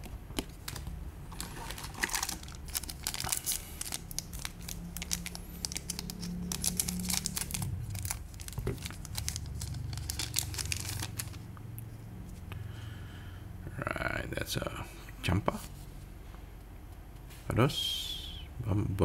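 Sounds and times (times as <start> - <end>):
foil pack crinkling: 0.4 - 11.4
scissors cutting foil: 1.8 - 11.2.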